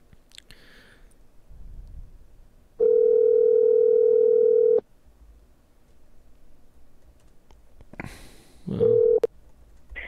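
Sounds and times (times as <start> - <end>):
telephone ringback tone: 2.8 - 4.8, 8.8 - 9.3.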